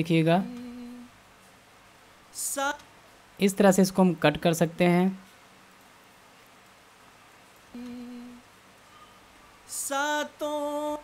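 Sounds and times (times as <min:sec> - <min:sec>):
person humming a note: 0:00.4 - 0:01.1, 0:07.8 - 0:08.4.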